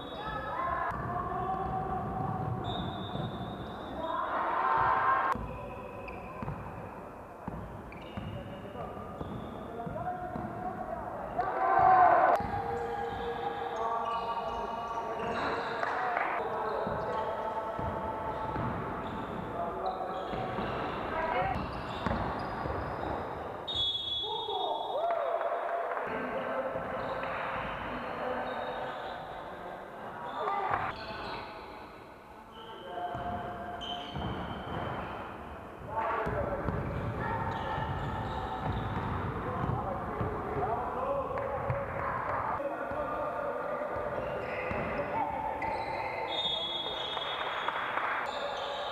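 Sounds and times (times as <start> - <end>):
players' voices: 0.0 - 47.4
basketball bouncing on court: 0.8 - 3.9, 4.8 - 6.8, 7.4 - 10.6, 16.8 - 19.5, 20.2 - 23.2, 33.1 - 35.2, 35.8 - 40.7, 43.9 - 45.9
shoe squeaks: 2.6 - 4.3, 5.4 - 10.1, 12.7 - 24.8, 32.5 - 35.4, 36.8 - 39.1, 44.0 - 47.5.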